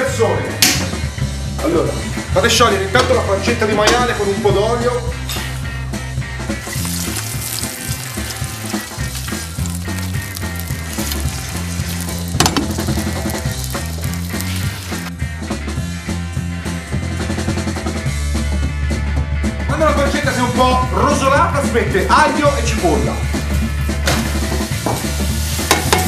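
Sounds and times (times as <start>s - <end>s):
pancetta sizzling in hot oil: 5.2s - 15.2s, 23.3s - 26.0s.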